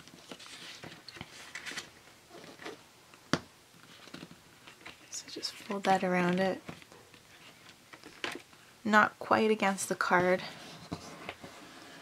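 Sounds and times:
cardstock rustling and scraping: 0.0 - 2.8, 10.4 - 12.0.

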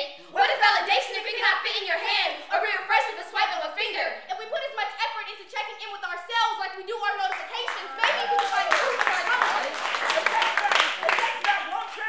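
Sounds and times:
voices over clapping: 7.0 - 12.0
audience clapping: 7.2 - 12.0.

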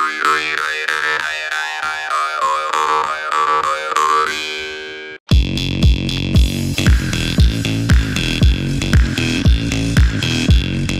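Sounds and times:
electronic dance music with bass: 5.3 - 10.9.

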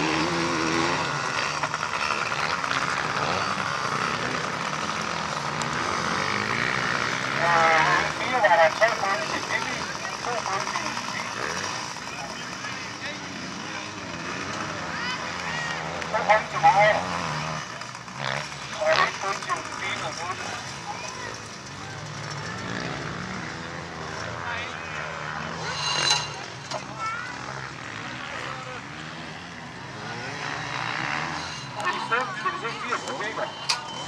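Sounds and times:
distant motorcycle engine drone: 0.0 - 34.0
voices: 0.0 - 34.0
people talking: 7.4 - 13.9, 14.8 - 17.1, 18.7 - 22.9, 31.8 - 34.0.

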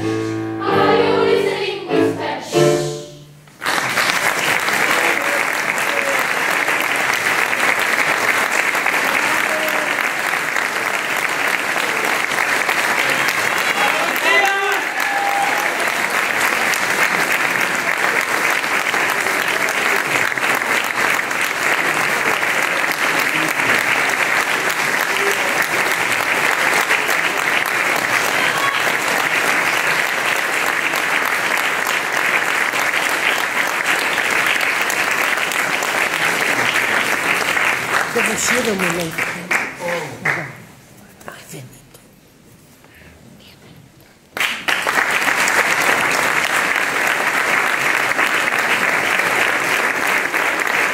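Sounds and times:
audience applause: 3.5 - 40.6, 44.4 - 50.9.

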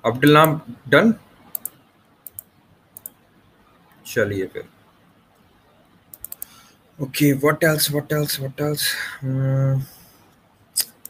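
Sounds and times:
computer mouse clicks: 1.5 - 3.2, 6.1 - 6.6.

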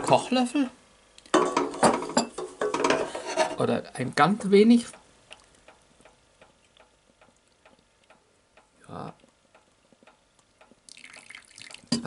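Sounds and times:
liquid dripping into bowl: 10.4 - 12.0
liquid trickling: 10.8 - 12.0.

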